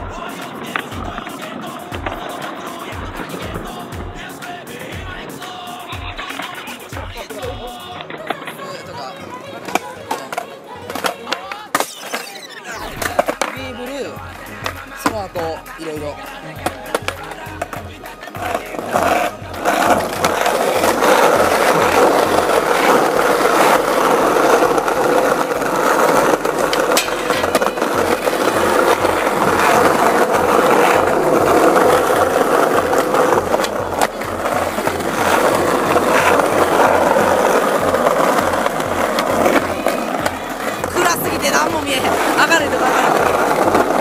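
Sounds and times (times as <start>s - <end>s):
skateboard wheels rolling on paving: 0.0s - 44.0s.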